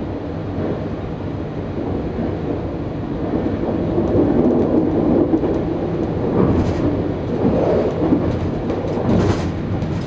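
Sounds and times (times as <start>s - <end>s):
train wheels rumbling on rails: 0.3s - 10.0s.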